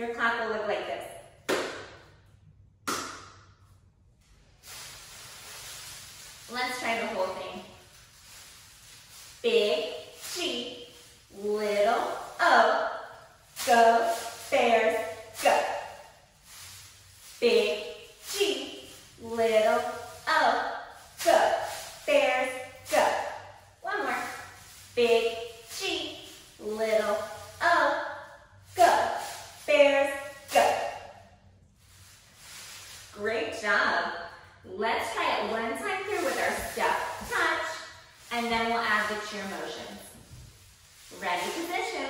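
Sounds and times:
pom-poms rustling: 0:03.6 - 0:42.0.

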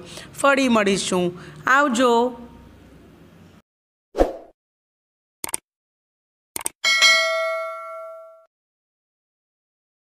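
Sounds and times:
quick double click: 0:06.6 - 0:06.8
bell ding: 0:06.8 - 0:08.5.

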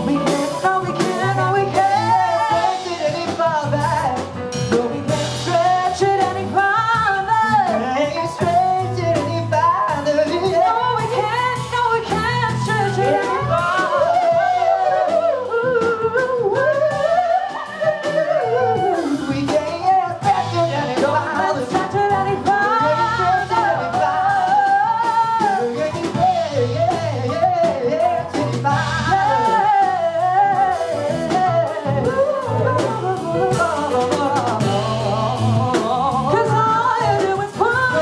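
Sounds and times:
bass: 0:00.0 - 0:38.0
drum kit and cymbals: 0:00.0 - 0:38.0
jazz band playing: 0:00.0 - 0:38.0
piano: 0:00.0 - 0:38.0
woman singing: 0:00.0 - 0:38.0.

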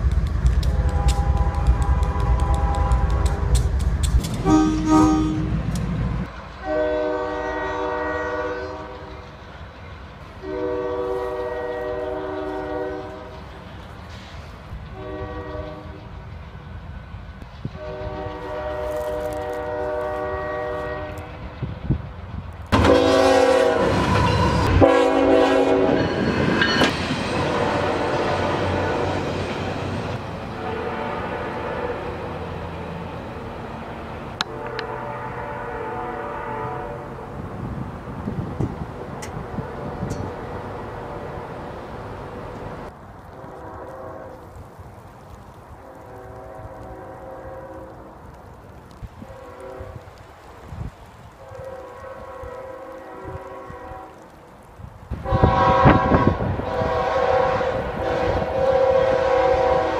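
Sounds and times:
passing train rumble: 0:00.0 - 0:59.9
locomotive air horn: 0:00.6 - 0:03.5, 0:04.4 - 0:05.7, 0:06.6 - 0:09.1, 0:10.4 - 0:13.3, 0:14.9 - 0:16.0, 0:17.8 - 0:21.4, 0:22.7 - 0:26.2, 0:30.5 - 0:32.2, 0:34.4 - 0:37.2, 0:43.4 - 0:44.4, 0:45.8 - 0:48.1, 0:49.2 - 0:50.2, 0:51.4 - 0:54.3, 0:55.2 - 0:59.9
louder locomotive horn blasts: 0:00.6 - 0:03.5, 0:04.4 - 0:05.8, 0:06.6 - 0:09.2, 0:10.4 - 0:13.4, 0:14.9 - 0:16.0, 0:17.7 - 0:21.5, 0:22.7 - 0:29.3, 0:30.5 - 0:32.3, 0:34.4 - 0:37.3, 0:43.3 - 0:44.4, 0:45.8 - 0:48.2, 0:49.2 - 0:50.2, 0:51.4 - 0:54.3, 0:55.1 - 0:59.9.

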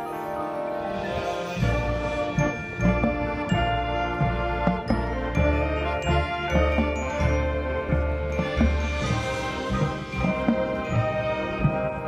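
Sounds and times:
marching band music: 0:00.0 - 0:12.0
ringing mallet percussion: 0:00.0 - 0:12.0.

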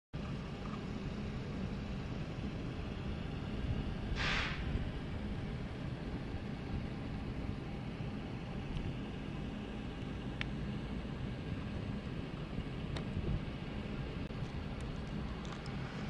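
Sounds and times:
low outdoor rumble: 0:00.2 - 0:16.0
brief hiss: 0:04.1 - 0:04.8.

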